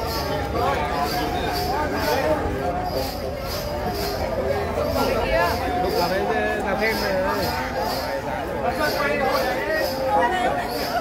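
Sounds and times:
babble of voices: 0.0s - 11.0s.

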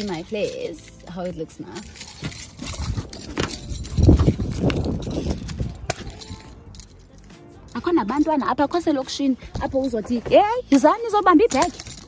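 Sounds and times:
objects clattering near microphone: 0.0s - 7.2s
keys jingling: 0.0s - 8.6s, 9.7s - 12.0s.

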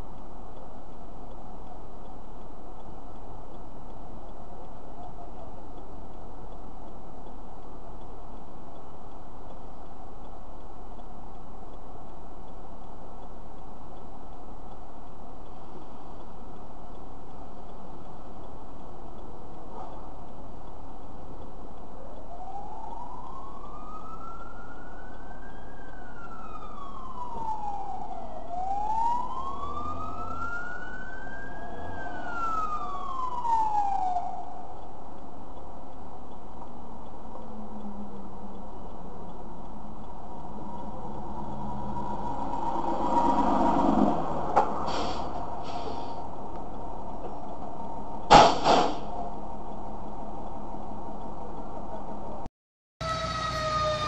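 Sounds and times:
fire truck siren wailing: 21.9s - 35.1s, 37.4s - 48.3s, 53.0s - 54.0s.

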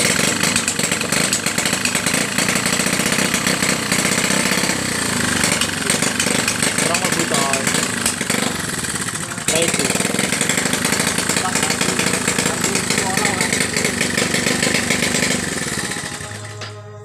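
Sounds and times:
small engine running: 0.0s - 17.0s.

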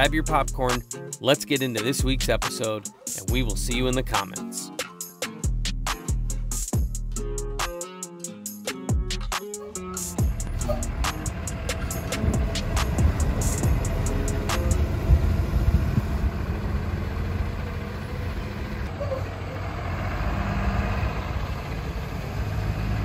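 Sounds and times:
bus engine rumbling: 9.8s - 23.0s.

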